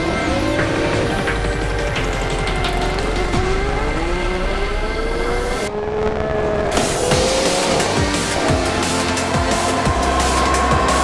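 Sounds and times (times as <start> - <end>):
racing car engine accelerating: 0.0 - 11.0
background music with a beat: 0.4 - 3.8, 7.1 - 11.0.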